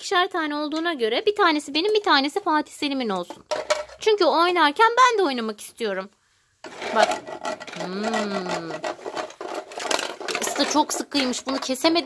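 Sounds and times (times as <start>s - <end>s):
woman humming: 7.8s - 8.8s.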